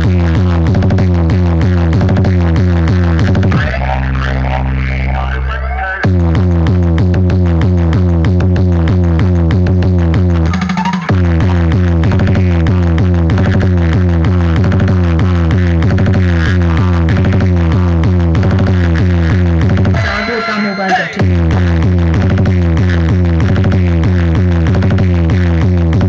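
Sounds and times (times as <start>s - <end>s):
loud electronic dance music: 0.0s - 26.0s.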